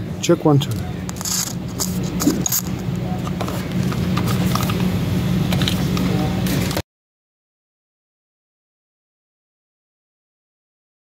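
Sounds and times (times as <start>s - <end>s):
steady low hum: 0.0s - 6.8s
microphone cable rattling and scraping: 0.6s - 4.8s.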